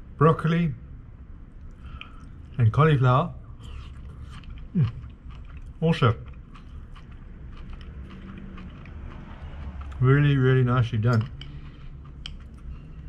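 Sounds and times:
man speaking: 0.2s - 0.8s, 2.6s - 3.4s, 5.8s - 6.3s, 9.9s - 11.3s
man chewing food: 1.5s - 2.6s, 3.5s - 10.0s, 10.9s - 13.0s.

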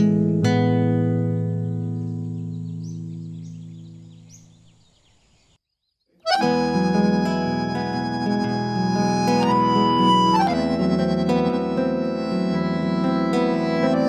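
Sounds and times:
piano accordion playing chords: 6.2s - 14.0s
guitar chord: 6.3s - 14.0s.

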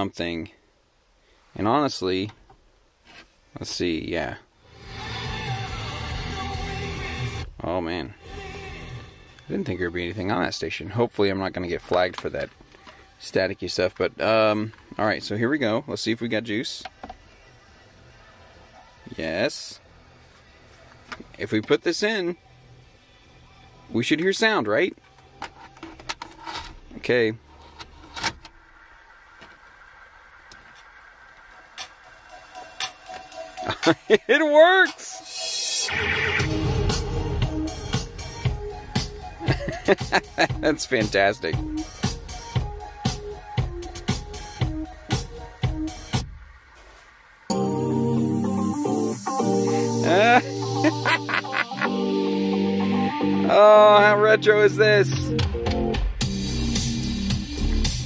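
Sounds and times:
music through car speakers: 4.6s - 9.5s, 28.5s - 58.0s.

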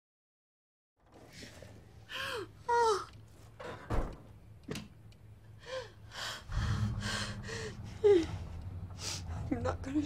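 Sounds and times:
woman sobbing: 2.1s - 3.2s, 5.6s - 9.2s
low steady drone: 5.4s - 10.0s.

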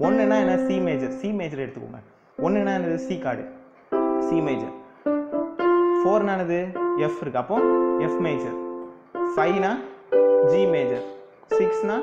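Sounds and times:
person speaking: 0.0s - 5.0s, 5.8s - 12.0s
keyboard piano chords: 0.0s - 12.0s.

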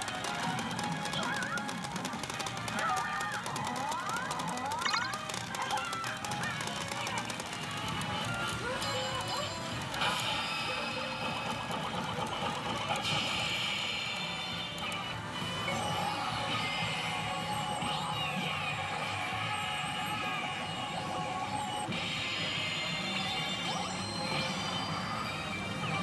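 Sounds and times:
pachinko machine music and effects: 0.0s - 26.0s.

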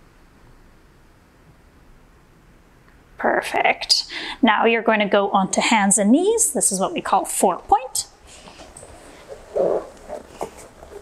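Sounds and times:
rustle on foam mat: 8.3s - 11.0s.

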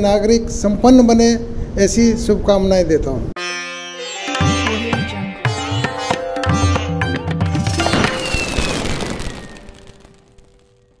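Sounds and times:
sitar music: 3.4s - 10.7s
falling whistle-like tone: 7.8s - 10.9s
shimmering hiss: 7.8s - 11.0s.

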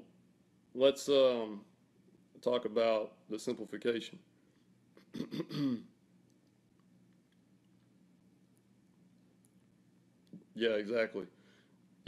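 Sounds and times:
man clearing his throat: 5.0s - 5.9s.

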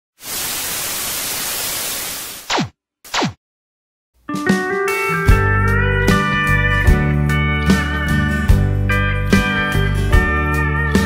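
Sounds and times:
television static hiss: 0.2s - 2.4s.

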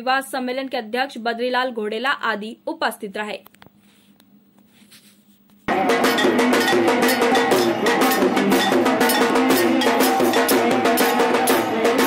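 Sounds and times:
brass hand cymbals clanking: 5.7s - 12.0s
drums: 5.7s - 12.0s
melody: 5.7s - 12.0s.

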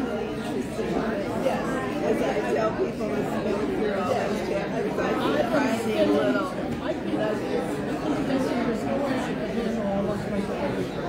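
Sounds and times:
hubbub of overlapping conversations: 0.0s - 11.0s.

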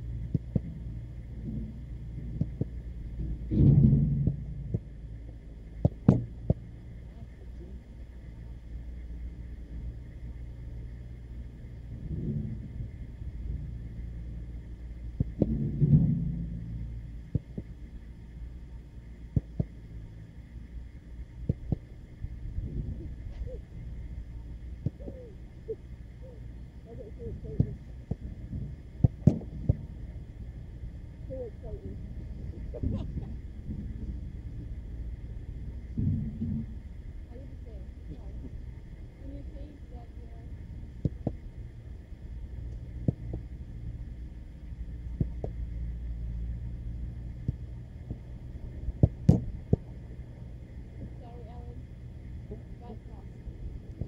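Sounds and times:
steady low rumble: 0.0s - 54.0s
football impact thuds: 27.5s - 29.8s, 48.9s - 49.9s.

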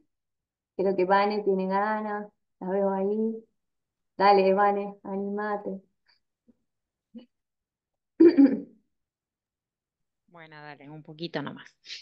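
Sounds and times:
person clearing throat: 8.2s - 8.7s.

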